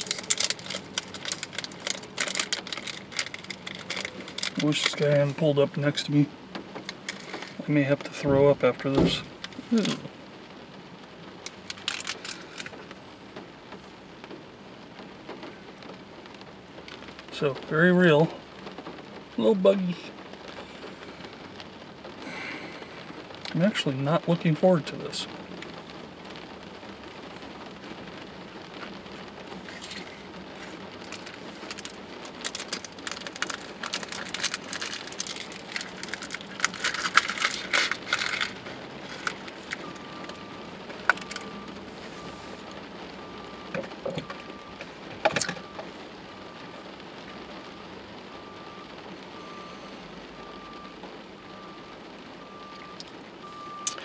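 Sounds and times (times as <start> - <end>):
plastic snack bag crinkling: 0.0 - 6.0, 6.8 - 7.7, 9.4 - 10.1, 11.4 - 12.8, 29.5 - 41.8
rain on a car: 0.0 - 54.0.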